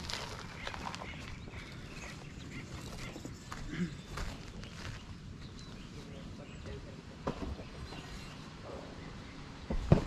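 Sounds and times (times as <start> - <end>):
footsteps crunching on gravel: 0.0 - 5.1.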